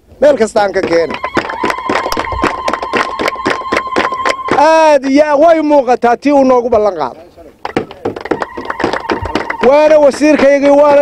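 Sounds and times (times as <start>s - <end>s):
quick clapping: 0.6s - 4.9s, 7.6s - 11.0s.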